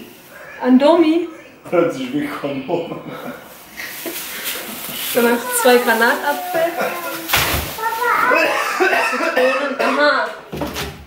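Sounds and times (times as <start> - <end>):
plastic bag handling noise: 3.5 - 8.6
child calling out and chattering: 5.2 - 9.4.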